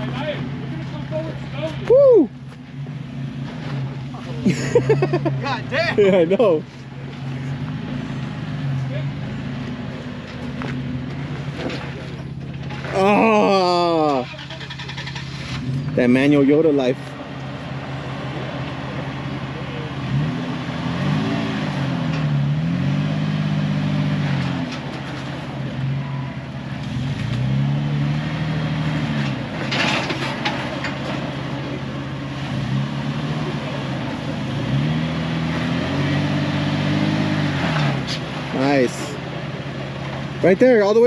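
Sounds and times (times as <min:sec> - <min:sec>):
engine revving at low speed: 0:00.0 - 0:41.0.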